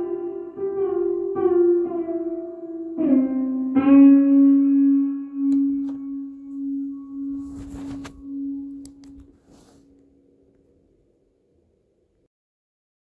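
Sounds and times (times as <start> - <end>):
held ringing music tone: 0.0 - 10.3.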